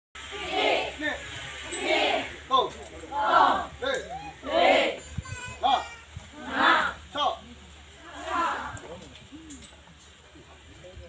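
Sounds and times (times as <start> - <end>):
group of women shouting: 3.1 - 5.0, 6.4 - 7.0, 8.1 - 8.8.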